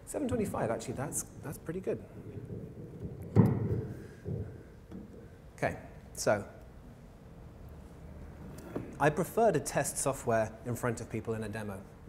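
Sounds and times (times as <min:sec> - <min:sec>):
microphone knocks and rubbing: 0:00.3 - 0:05.4
microphone handling thump: 0:02.3 - 0:05.1.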